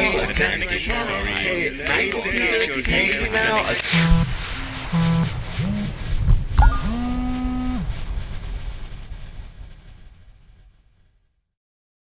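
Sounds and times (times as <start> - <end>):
hissing noise: 3.4 - 10.7
synthesized tone sliding: 3.6 - 8.1.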